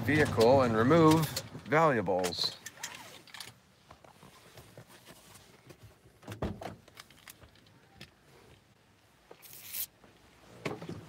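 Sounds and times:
short hissing rustle: 9.4s - 9.9s.

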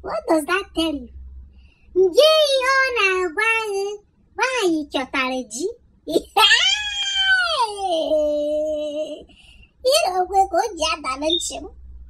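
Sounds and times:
woman talking in high voice: 0.0s - 1.1s, 2.0s - 9.3s, 9.9s - 11.7s.

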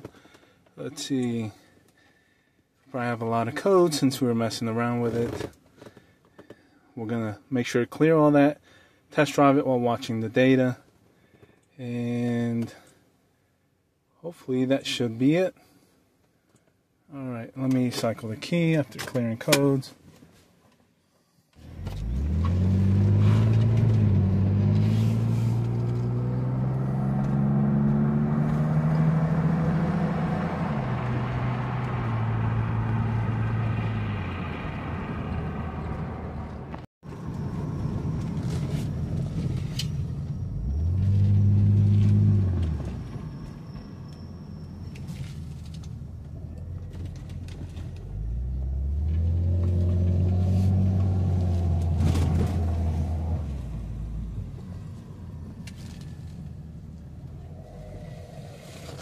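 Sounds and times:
car engine accelerating: 21.6s - 59.0s.

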